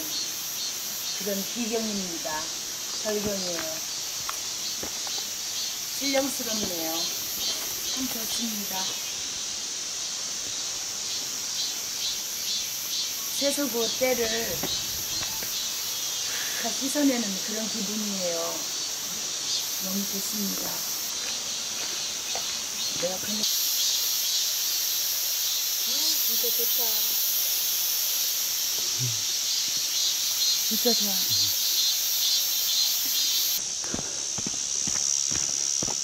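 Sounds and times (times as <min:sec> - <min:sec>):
insects chirring: 0:00.0 - 0:36.0.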